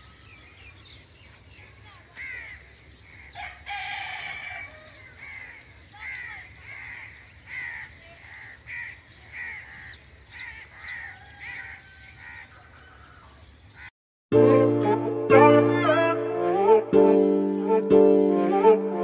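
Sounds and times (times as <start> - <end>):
crows cawing: 2.0 - 13.9.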